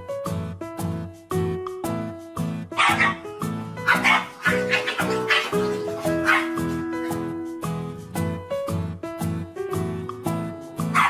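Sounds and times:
background music with steady beat: 0.0s - 11.0s
dog barking: 2.8s - 3.2s, 3.8s - 6.6s.

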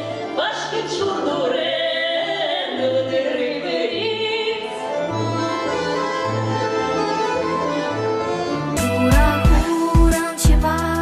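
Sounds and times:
women singing a duet: 0.0s - 5.4s, 8.8s - 11.0s
low backing accompaniment: 3.2s - 11.0s.

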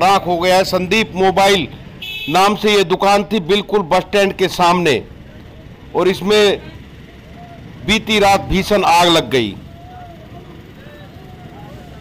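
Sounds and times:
distant voices: 2.6s - 12.0s.

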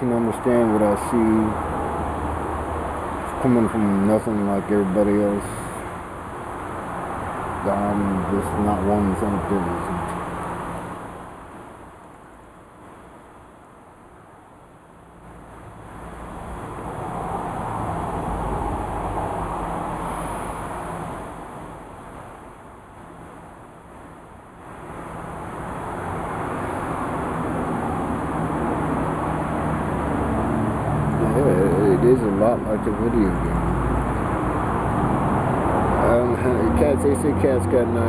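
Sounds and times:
steady low hum: 0.0s - 38.0s
vehicle passing: 0.1s - 11.6s, 15.4s - 21.9s, 24.6s - 38.0s.

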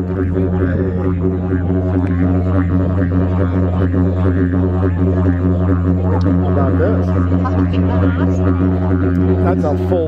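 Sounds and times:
didgeridoo drone: 0.0s - 10.0s.

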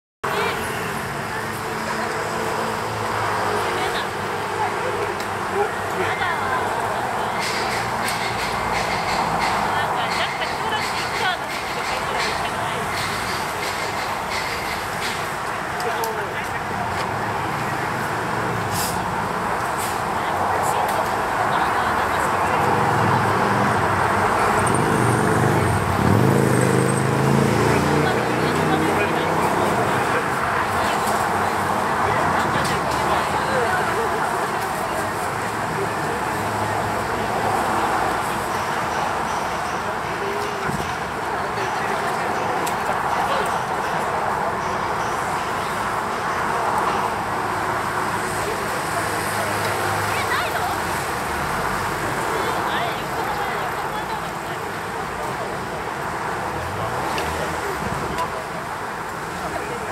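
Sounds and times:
chatter of passers-by: 0.2s - 59.9s
crowd talking: 0.2s - 59.9s
road traffic: 0.2s - 59.9s.

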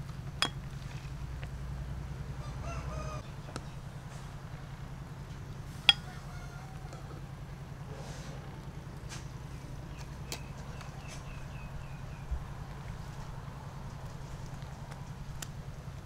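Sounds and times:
chicken calling: 2.4s - 3.3s.

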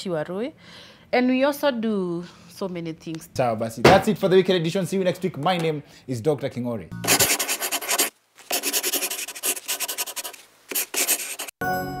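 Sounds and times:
pencil scribbling on paper: 7.0s - 11.6s.

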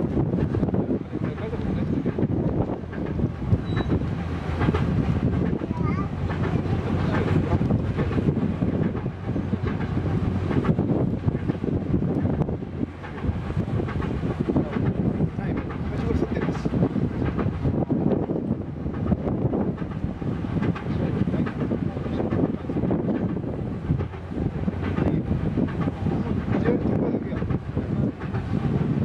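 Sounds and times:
heavy transporter rumbling: 0.0s - 29.0s.

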